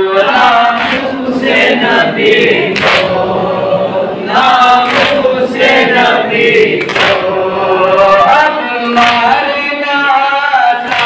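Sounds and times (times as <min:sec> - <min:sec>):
men singing a lament: 0:00.0 - 0:11.0.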